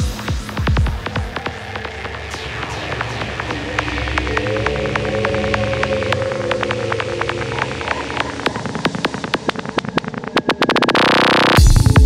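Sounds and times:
synth pad rising in pitch: 1.0 - 11.6.

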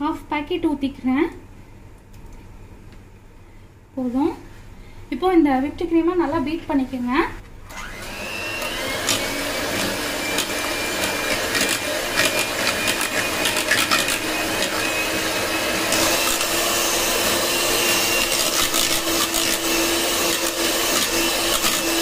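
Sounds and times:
electric hand mixer running: 7.7 - 22.0.

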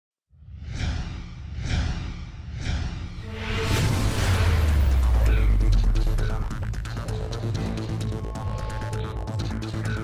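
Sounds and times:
whooshes: 0.5 - 7.2
low pulsing rumble: 2.4 - 8.6.

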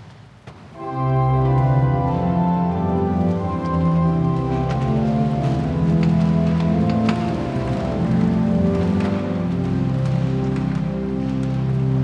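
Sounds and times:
church organ chords: 0.8 - 12.0.

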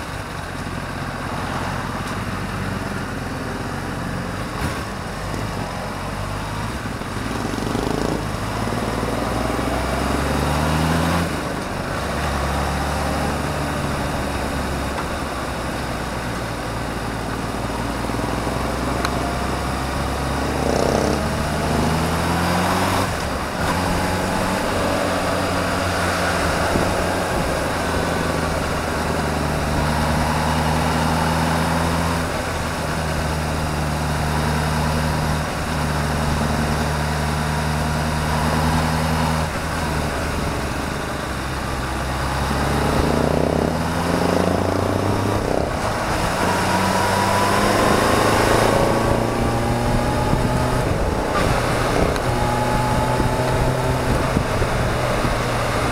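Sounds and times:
motorcycle engine running: 0.0 - 10.4, 11.2 - 31.4, 39.4 - 55.9
wind rush: 42.5 - 55.9.

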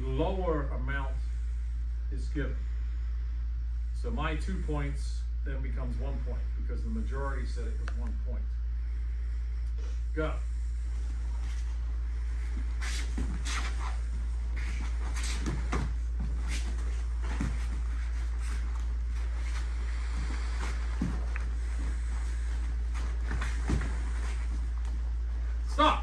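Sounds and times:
low hum: 0.0 - 26.0
feet thudding on foam mats: 11.0 - 25.7
padded kicks landing: 12.8 - 25.2.

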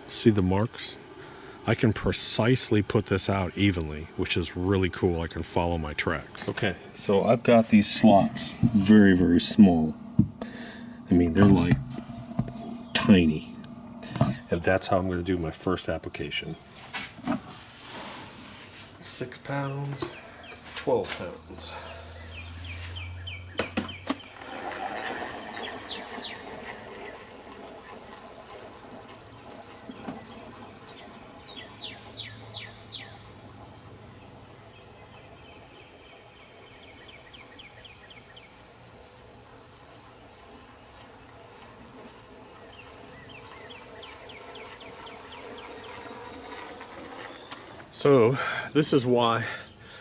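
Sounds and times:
insects: 0.0 - 23.0, 24.0 - 50.0
birds chirping: 0.0 - 50.0.

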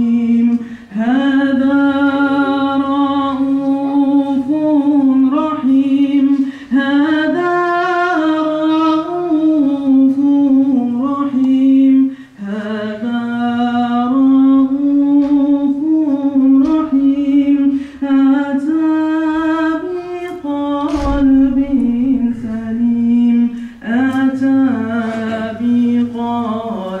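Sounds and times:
person singing devotional chant: 0.0 - 27.0.

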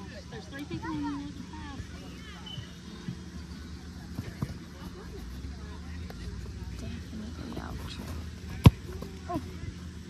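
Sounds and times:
soccer ball kick thump: 8.0 - 9.1.

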